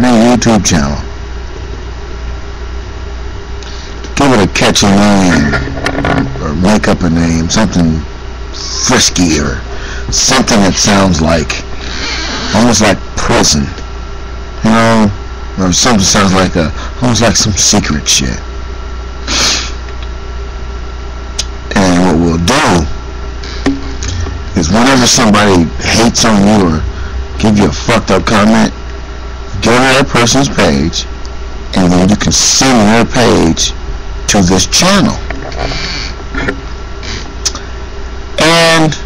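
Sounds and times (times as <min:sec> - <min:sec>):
steady low hum: 0:00.0 - 0:39.0
steady low rumble: 0:00.0 - 0:39.0.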